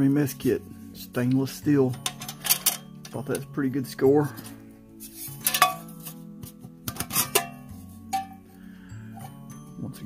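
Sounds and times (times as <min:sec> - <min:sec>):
metal mess kit clinking: 0:01.9 - 0:03.5, 0:04.2 - 0:06.2, 0:06.9 - 0:08.4.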